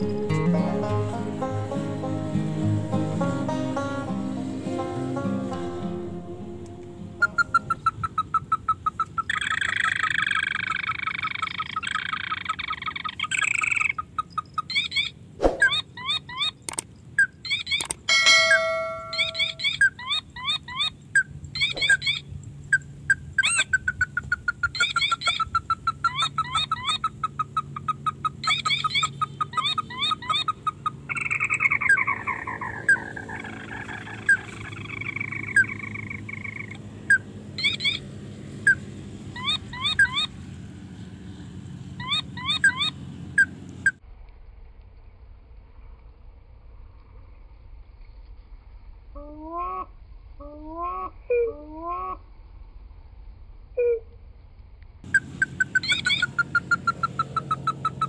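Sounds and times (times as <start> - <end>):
birds chattering calls: 7.2 - 16.6, 17.5 - 38.1, 55.2 - 58.0.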